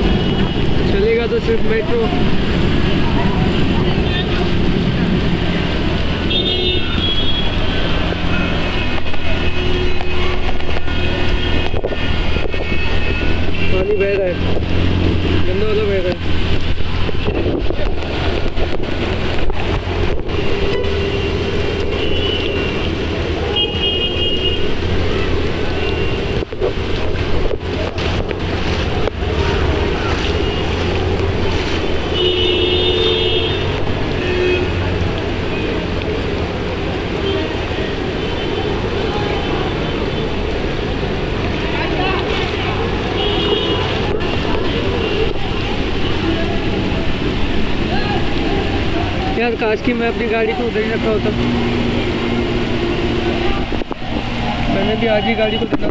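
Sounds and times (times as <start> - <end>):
heavy rain: 0.0 - 55.9
running floodwater: 0.0 - 55.9
vehicle engine humming: 0.0 - 55.9.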